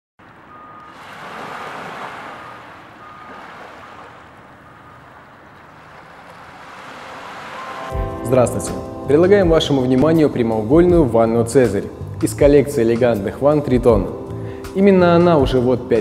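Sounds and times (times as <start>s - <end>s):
ocean surf washing ashore: 0.3s - 8.5s.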